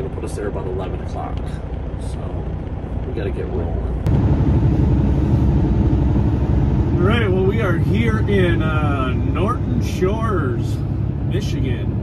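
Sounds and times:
truck engine low rumble: 0:00.0 - 0:12.0.

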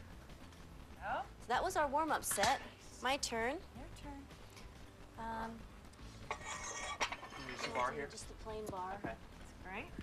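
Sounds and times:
barbell weight plates clinking: 0:06.7 - 0:08.0.

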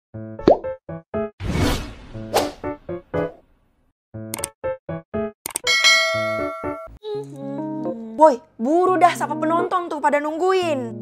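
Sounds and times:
whoosh: 0:01.4 - 0:02.8
bouncy jingle notes: 0:05.7 - 0:07.0.

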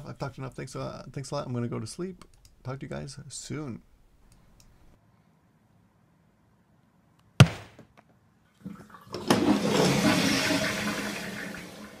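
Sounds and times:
sharp knock: 0:07.4 - 0:07.9
toilet flushing: 0:08.6 - 0:12.0.

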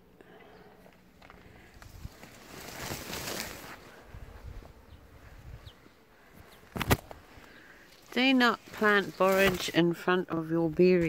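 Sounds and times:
leaves and stems rustling: 0:00.9 - 0:11.0.

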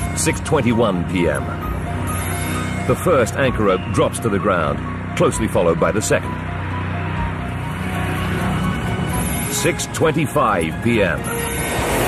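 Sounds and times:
low drone music: 0:00.0 - 0:12.0.

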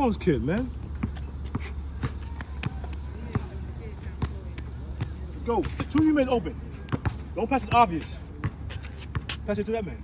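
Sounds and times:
basketball bouncing on asphalt: 0:00.0 - 0:10.0.

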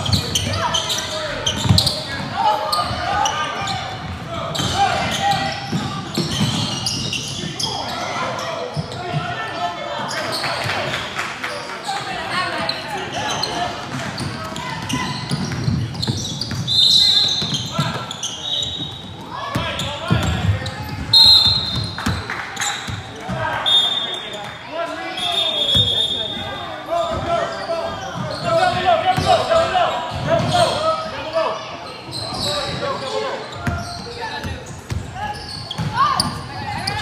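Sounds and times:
spectators shouting and talking: 0:00.0 - 0:37.0.

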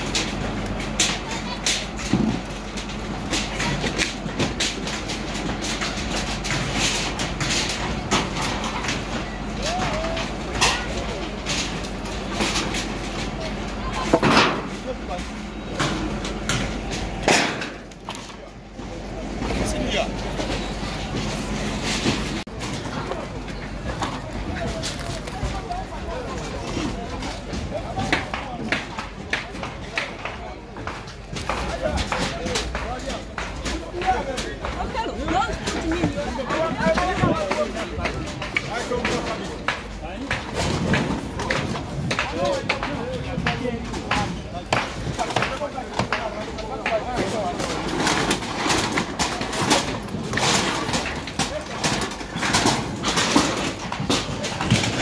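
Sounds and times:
outdoor background noise: 0:00.0 - 0:55.0
people talking: 0:00.0 - 0:55.0.

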